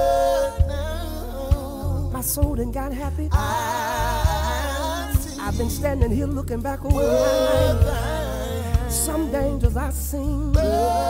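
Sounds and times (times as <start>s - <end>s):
low bass: 0.0s - 11.0s
man singing gospel song: 0.0s - 11.0s
slow beat: 0.0s - 11.0s.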